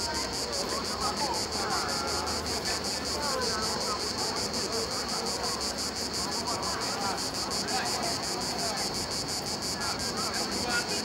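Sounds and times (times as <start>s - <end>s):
cicadas chirring: 0.0s - 11.0s
faint distant voices: 0.0s - 11.0s.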